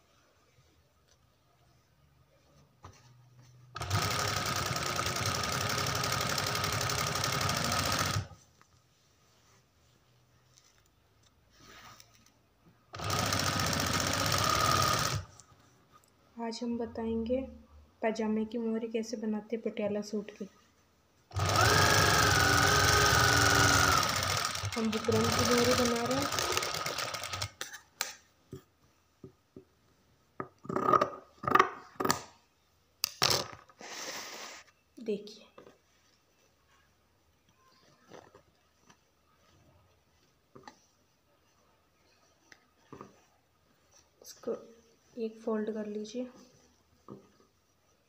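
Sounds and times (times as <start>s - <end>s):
sewing machine stitching: 3.8s - 8.4s, 12.9s - 15.4s, 21.3s - 27.6s.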